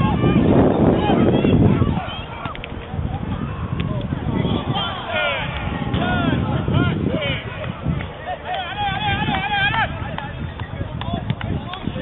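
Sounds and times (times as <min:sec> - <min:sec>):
players shouting: 0:00.0 - 0:12.0
wind rumbling on microphone: 0:00.0 - 0:12.0.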